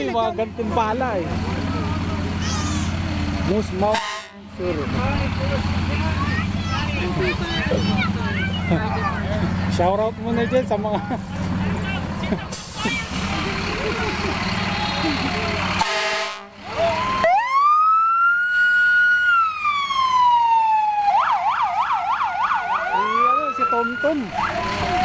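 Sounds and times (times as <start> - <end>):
crowd noise: 0.0 - 17.2, 23.0 - 25.0
engine rumble: 0.0 - 25.0
fire truck siren: 2.4 - 5.5, 14.2 - 25.0.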